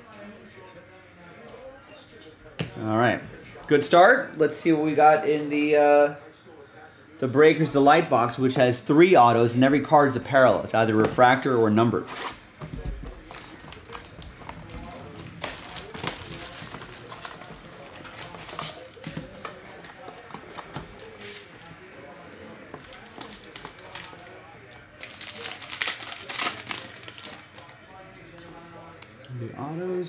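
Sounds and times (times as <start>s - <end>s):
cardboard rustling: 12.1s - 21.7s
wrapping crinkling: 13.1s - 21.7s, 22.8s - 24.4s, 25.0s - 27.8s.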